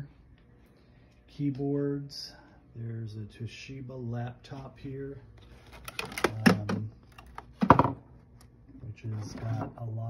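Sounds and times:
plastic device clattering: 5.6s - 8.0s.

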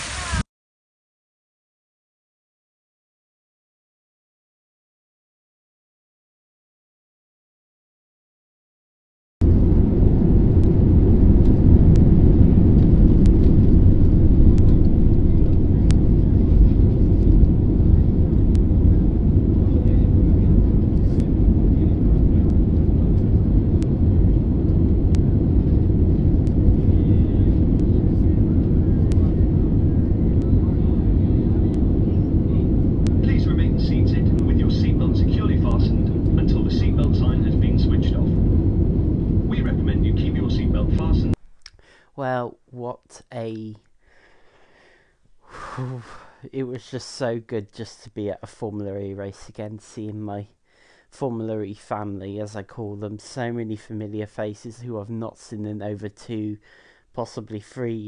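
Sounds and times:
jet engine cabin roar: 0.0s - 0.5s, 9.4s - 41.4s
voices: 26.8s - 38.4s, 39.5s - 41.4s.

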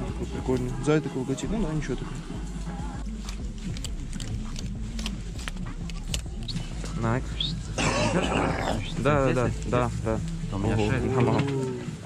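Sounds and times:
long drawn-out vocal sound: 10.7s - 12.0s.

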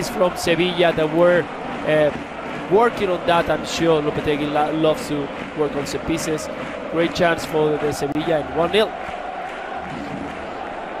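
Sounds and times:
stadium crowd cheering and chanting: 0.0s - 11.0s.

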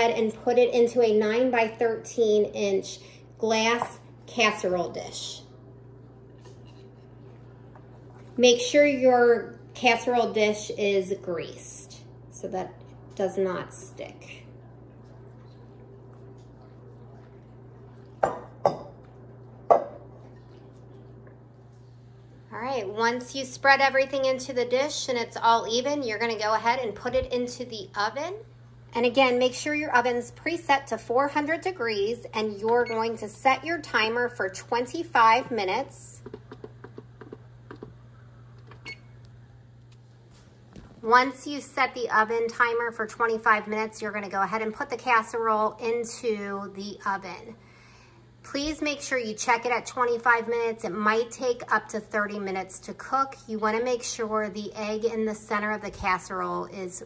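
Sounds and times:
faint low hum: 0.0s - 57.0s.

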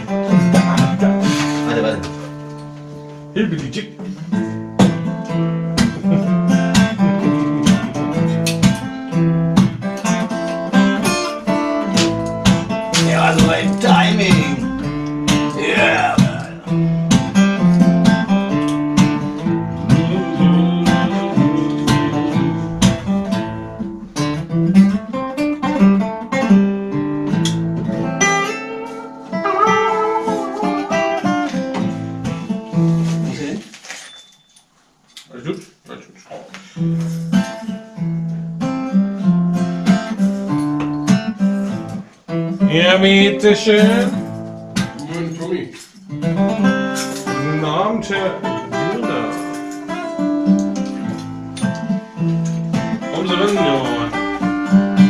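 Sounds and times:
acoustic guitar playing: 0.0s - 33.7s, 36.5s - 55.0s.

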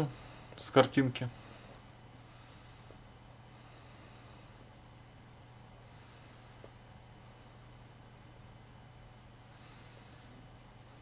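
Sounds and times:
faint low hum and hiss: 0.0s - 11.0s.

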